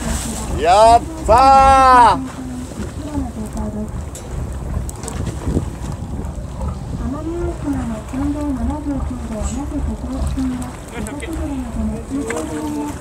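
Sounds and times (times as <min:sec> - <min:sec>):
boat rumble: 0:00.0 - 0:13.0
wind on microphone: 0:00.0 - 0:13.0.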